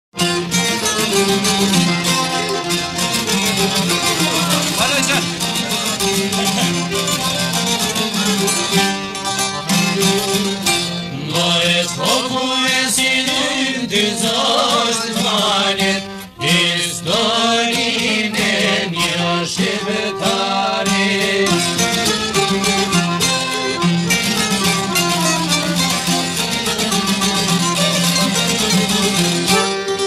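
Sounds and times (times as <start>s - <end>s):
violin melody: 0.2s - 11.2s, 15.2s - 30.0s
plucked lutes playing: 0.2s - 30.0s.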